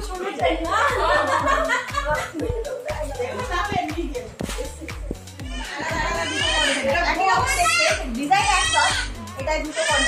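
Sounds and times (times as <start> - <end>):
children chattering and calling out: 2.0 - 10.0.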